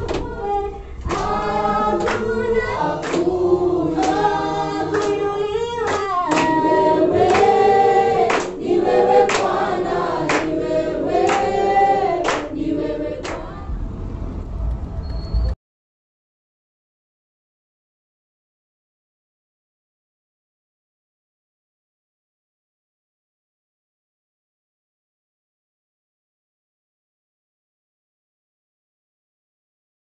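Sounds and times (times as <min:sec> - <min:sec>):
congregation singing: 0:00.0 - 0:14.5
hand claps: 0:01.1 - 0:01.4, 0:02.0 - 0:02.3, 0:03.0 - 0:03.4, 0:04.0 - 0:04.3, 0:04.9 - 0:05.3, 0:05.9 - 0:07.6, 0:08.2 - 0:10.6, 0:11.2 - 0:11.6, 0:12.2 - 0:12.6, 0:13.2 - 0:13.4.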